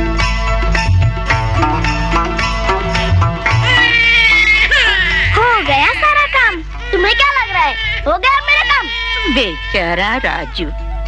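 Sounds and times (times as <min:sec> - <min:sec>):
soft background music: 0:00.0 - 0:11.0
baby crying: 0:03.5 - 0:10.7.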